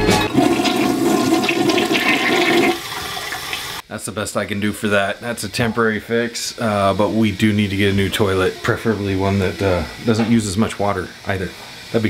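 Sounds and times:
toilet flushing: 0:00.0 - 0:03.8
toilet tank refilling: 0:00.0 - 0:03.8.

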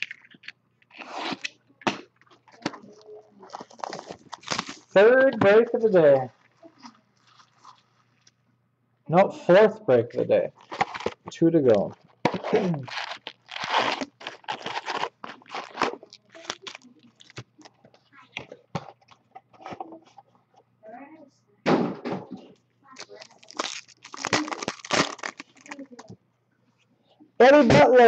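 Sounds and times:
foil wrappers crinkling and tearing: 0:02.2 - 0:05.0, 0:10.6 - 0:11.2, 0:12.5 - 0:17.7, 0:22.9 - 0:26.0.

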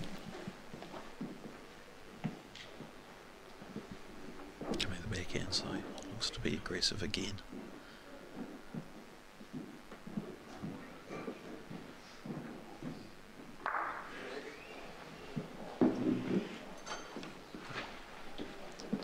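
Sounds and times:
footsteps on carpet mat: 0:07.5 - 0:13.5.

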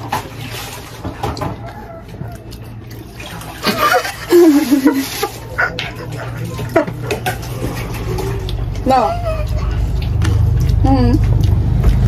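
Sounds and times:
woman laughing: 0:03.6 - 0:07.1.

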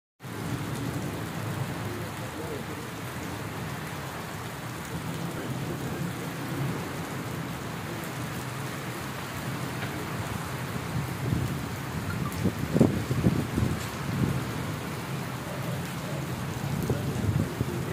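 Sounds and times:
rain pattering on brick paving: 0:00.2 - 0:17.9.

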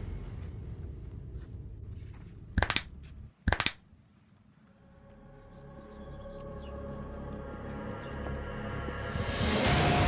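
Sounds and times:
knuckles and neck cracking: 0:02.6 - 0:02.9, 0:03.5 - 0:03.8.

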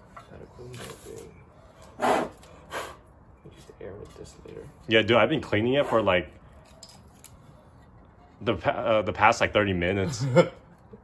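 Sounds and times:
sharp puffs of breath: 0:01.8 - 0:03.1.

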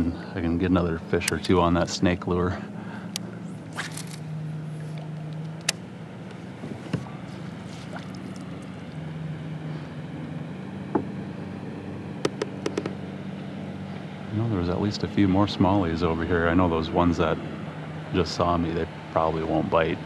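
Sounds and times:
boat motor humming: 0:00.0 - 0:20.0
sharp knocks and clicks: 0:12.2 - 0:13.0.

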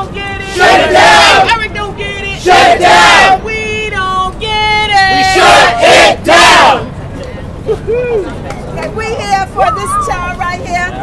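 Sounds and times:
crowd chanting: 0:00.4 - 0:01.5, 0:02.4 - 0:03.4, 0:05.1 - 0:06.9.

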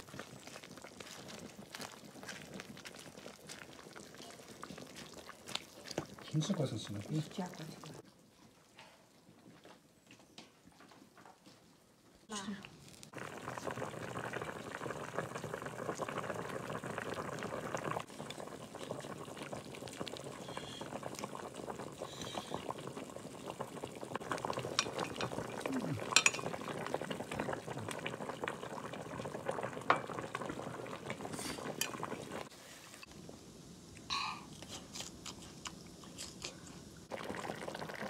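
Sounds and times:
broth bubbling in a pot: 0:00.0 - 0:09.6, 0:12.3 - 0:38.0.

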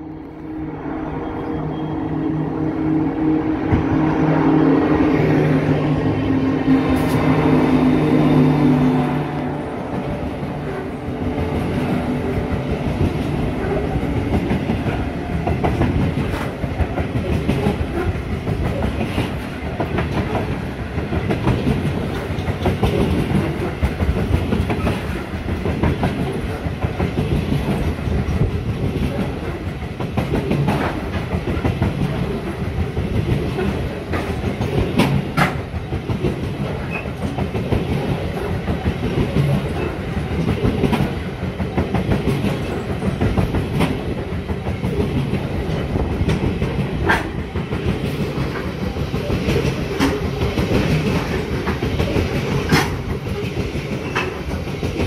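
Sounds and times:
train wheels rumbling on rails: 0:00.0 - 0:55.0.

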